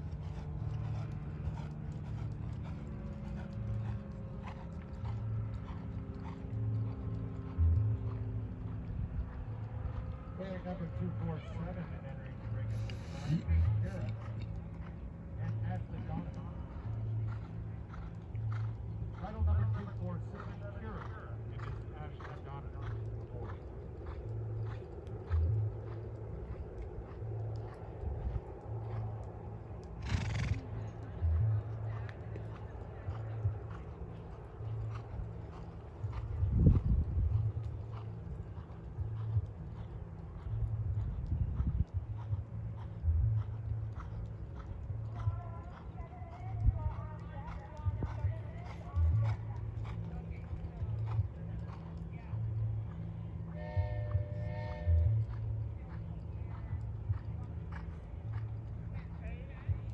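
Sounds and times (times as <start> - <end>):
hoofbeats on sand: 0.0 - 12.0, 12.6 - 59.9.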